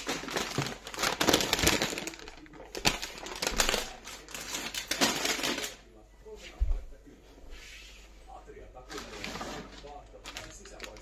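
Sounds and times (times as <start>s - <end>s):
wrapping paper rustling: 0.0s - 5.8s, 8.8s - 11.0s.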